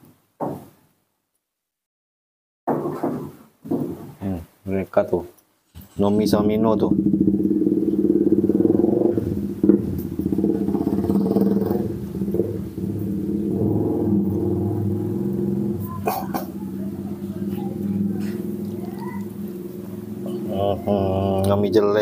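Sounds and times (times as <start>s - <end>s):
low droning hum: 6.1s - 22.0s.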